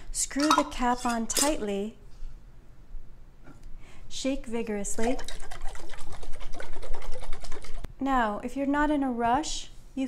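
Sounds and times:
liquid sloshing in shaken jar: 4.9s - 7.9s.

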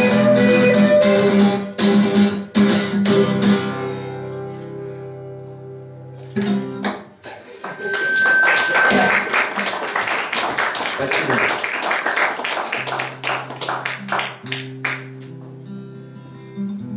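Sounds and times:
acoustic guitar notes: 0.0s - 9.3s, 12.7s - 16.9s
audience clapping: 6.9s - 15.3s
high steady tone: 7.7s - 9.3s.

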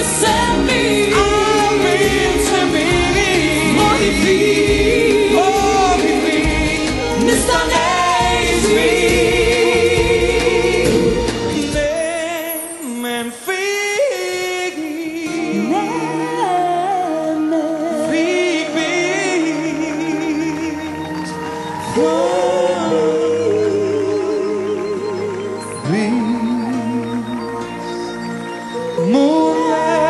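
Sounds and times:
song with band backing: 0.0s - 30.0s.

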